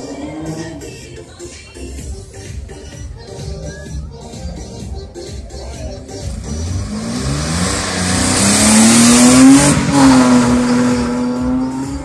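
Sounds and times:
rally car accelerating past: 0:06.5 - 0:12.0.

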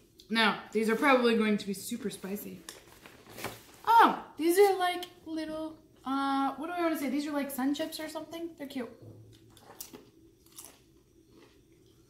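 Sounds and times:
tortilla chip crunching: 0:09.4 - 0:12.0.

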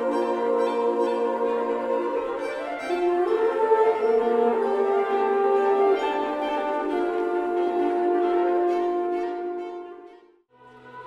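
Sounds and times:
women's choir singing: 0:00.0 - 0:07.6
violins playing: 0:00.0 - 0:11.0.

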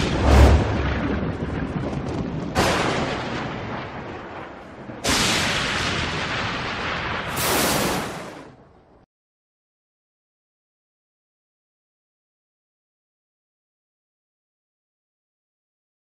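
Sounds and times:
thunder crashes: 0:00.0 - 0:08.6
thunder rumble: 0:00.0 - 0:09.0.

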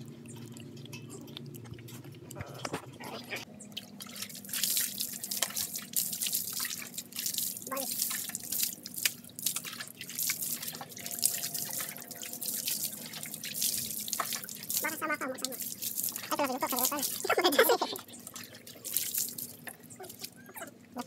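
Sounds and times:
water splashing and dripping: 0:00.0 - 0:21.0.

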